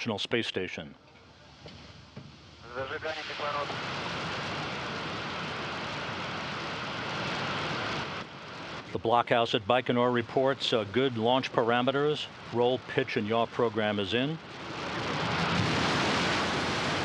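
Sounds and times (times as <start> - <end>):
rocket engines roaring: 2.5 - 17.0.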